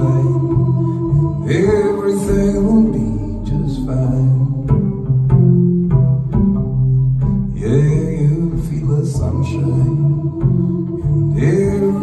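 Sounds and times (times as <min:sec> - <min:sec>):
double bass plucked: 0:00.0 - 0:12.0.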